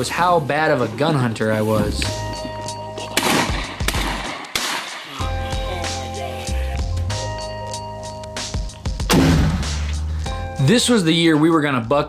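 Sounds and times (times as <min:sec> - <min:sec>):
loud sharp gunshots: 0:03.2 - 0:05.2, 0:09.1 - 0:09.9.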